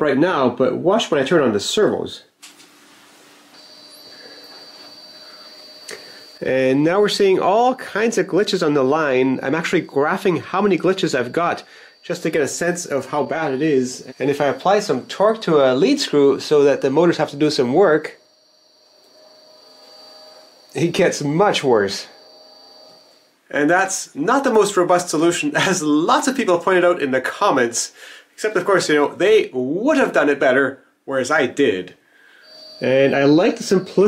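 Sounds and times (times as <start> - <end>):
servo motors high-pitched whine: 18.1 - 20.9, 22.0 - 23.3.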